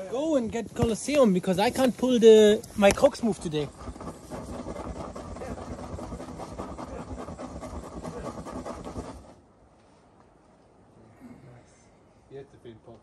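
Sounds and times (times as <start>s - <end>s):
rumbling rustling microphone noise: 0.0s - 10.2s
quiet outdoor ambience: 0.0s - 13.0s.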